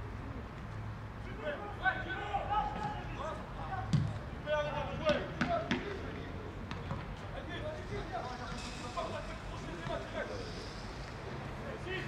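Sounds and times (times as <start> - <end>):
players shouting: 1.4 - 4.0
football being kicked: 3.9 - 4.2.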